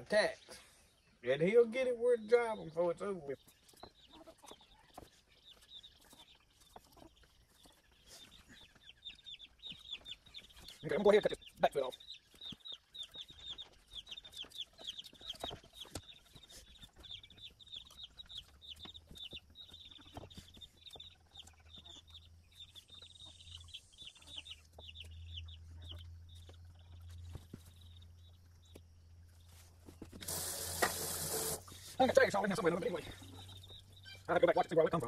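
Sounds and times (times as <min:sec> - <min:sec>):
faint chickens clucking: 0:00.0 - 0:30.4, 0:31.4 - 0:35.0
faucet running water: 0:30.2 - 0:31.7.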